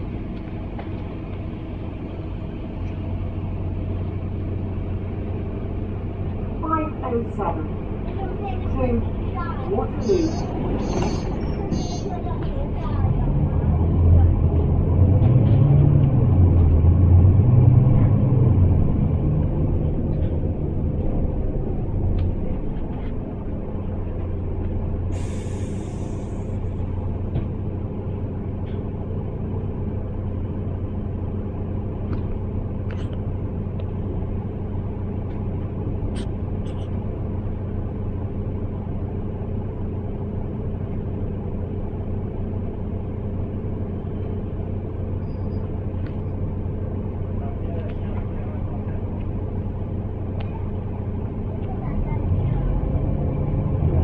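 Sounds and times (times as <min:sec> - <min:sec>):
bus diesel engine drone: 0:00.0 - 0:54.0
road rumble: 0:00.0 - 0:54.0
air brake hiss: 0:25.1 - 0:26.6.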